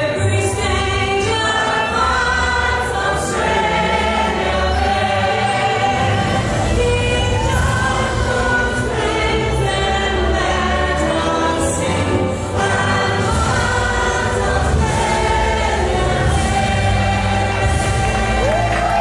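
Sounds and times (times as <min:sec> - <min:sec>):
accompanying music: 0:00.0 - 0:19.0
crowd singing an anthem: 0:00.0 - 0:19.0.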